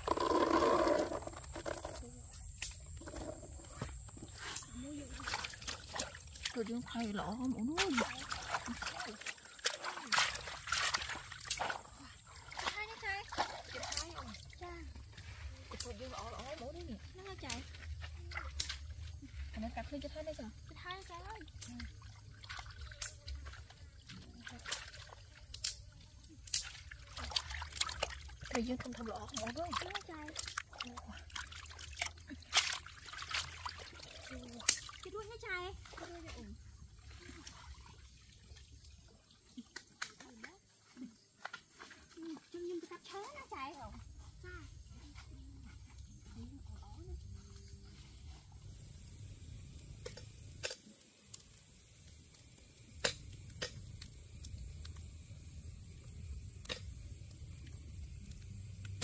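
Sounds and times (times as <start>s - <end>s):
water sloshing and trickling: 0.0s - 59.0s.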